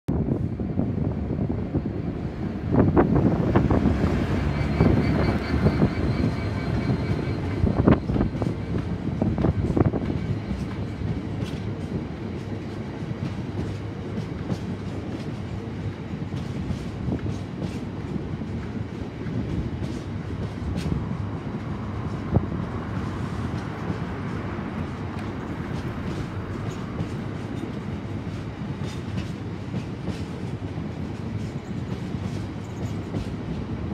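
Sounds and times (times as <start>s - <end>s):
freight train passing: 0.1s - 33.9s.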